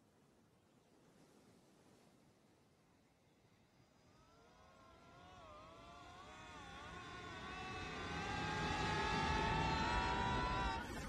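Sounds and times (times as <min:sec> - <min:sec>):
held chord of tones rising: 0:05.2 - 0:11.0.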